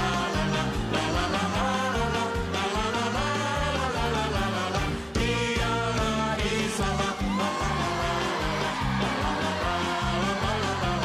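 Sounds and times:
live band playing upbeat song: 0.0 - 11.0
quick bass line: 0.0 - 11.0.

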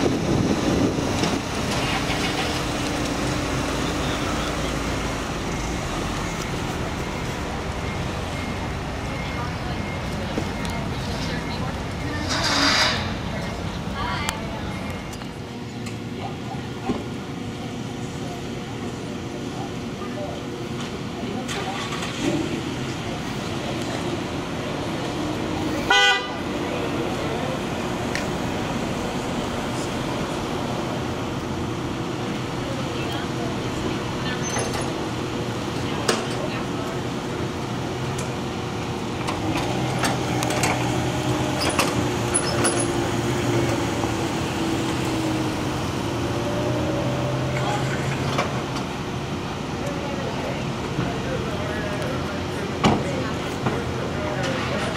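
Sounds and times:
vehicle and outdoor noise: 0.0 - 54.9
car horn toot: 25.9 - 26.4.

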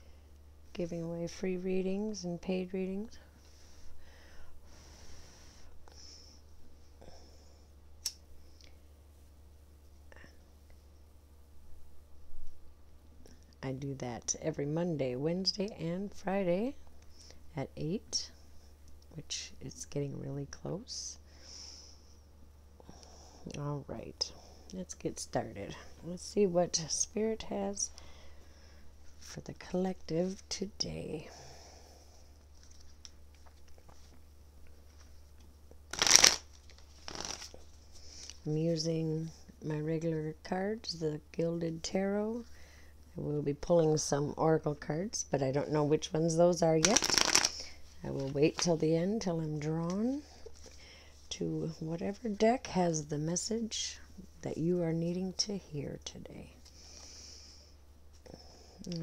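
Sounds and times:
steady low hum: 0.0 - 59.0
cards being shuffled: 35.9 - 38.4, 46.8 - 48.8.

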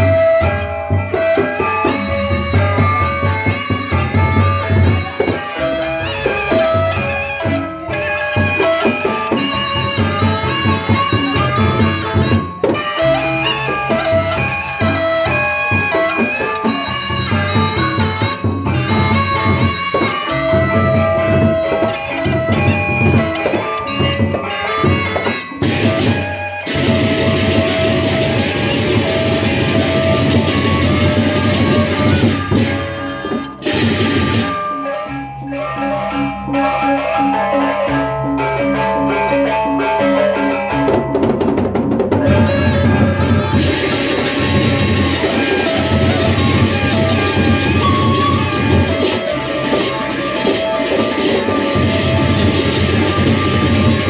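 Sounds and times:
cymbals clashing: 0.0 - 35.0, 42.5 - 54.0
held melody note: 0.0 - 41.2, 42.2 - 54.0
barrel drums beaten by hand: 16.6 - 34.7, 40.9 - 54.0
clashing hand cymbals: 43.6 - 54.0.

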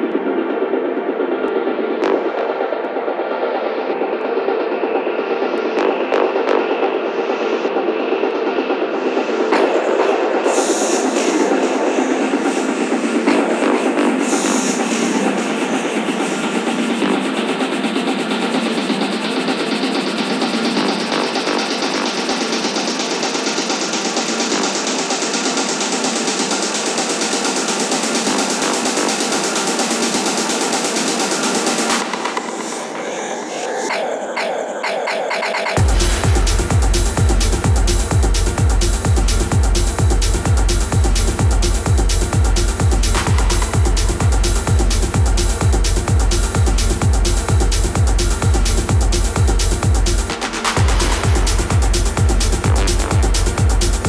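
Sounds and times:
techno music: 0.0 - 54.0
kick drum and bass: 3.9 - 32.7, 34.8 - 54.0.

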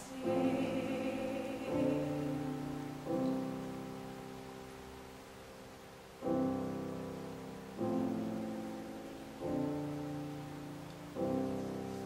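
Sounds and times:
grand piano chords: 0.0 - 12.0.

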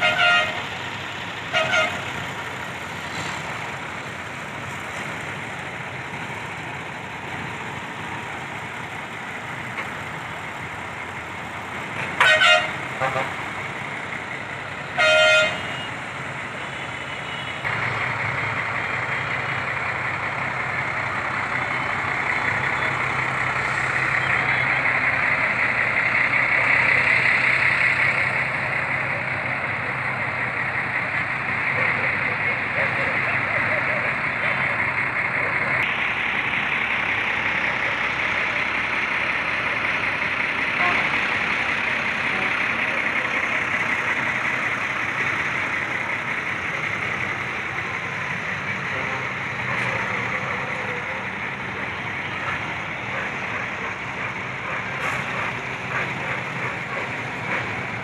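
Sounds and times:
bus engine idling: 0.0 - 58.0
short vehicle horn blasts: 15.0 - 15.9.

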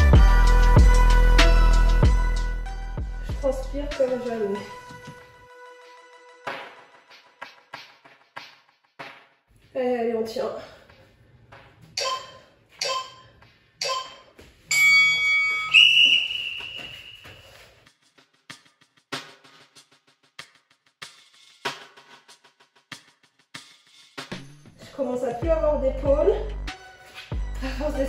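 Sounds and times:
long timer tone: 12.0 - 17.2
timer short beeps: 12.0 - 17.3.

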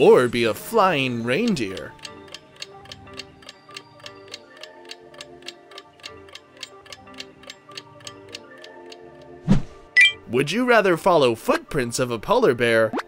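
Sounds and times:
soft background music: 0.0 - 13.0
fast clock ticking: 1.4 - 9.3.

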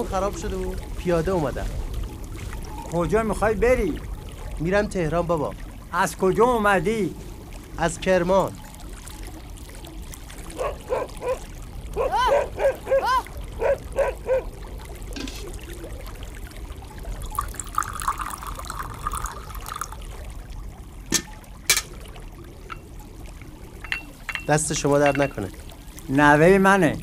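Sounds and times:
tea pouring into glass: 15.2 - 25.7
glass clinking on saucer: 21.1 - 22.0, 22.6 - 22.9, 23.8 - 25.5.

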